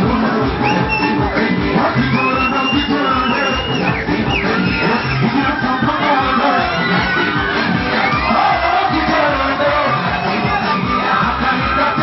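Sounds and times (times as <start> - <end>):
crowd noise: 0.0 - 12.0
live stage music over pa: 0.0 - 12.0.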